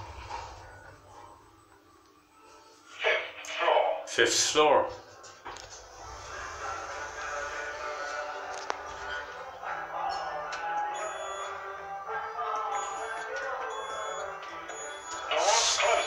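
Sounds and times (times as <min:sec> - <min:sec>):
music of held tones: 0:06.3 - 0:16.0
short high beeps: 0:11.0 - 0:11.6, 0:12.8 - 0:16.0.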